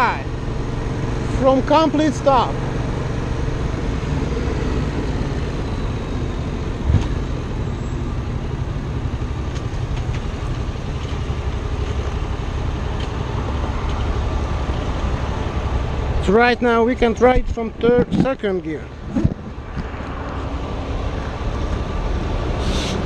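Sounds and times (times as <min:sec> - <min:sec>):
traffic: 0:00.0 - 0:23.0
motorcycle engine idling: 0:07.4 - 0:17.9.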